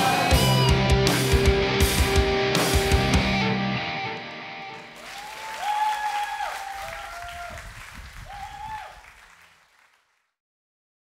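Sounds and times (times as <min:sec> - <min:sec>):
audience applauding: 0:04.7 - 0:10.4
high-pitched cheers: 0:04.8 - 0:09.4.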